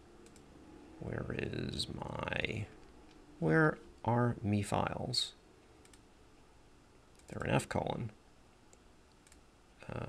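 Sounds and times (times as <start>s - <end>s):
computer mouse clicks: 0.2s - 0.5s, 5.8s - 6.1s, 7.1s - 7.4s, 8.7s - 9.4s
person speaking: 1.0s - 2.8s, 3.4s - 5.4s, 7.2s - 8.2s.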